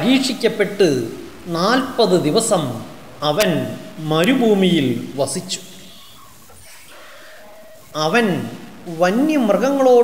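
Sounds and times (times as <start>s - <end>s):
background noise: 0.0s - 10.0s
person speaking: 0.0s - 10.0s
faint drawn-out call: 2.8s - 9.3s.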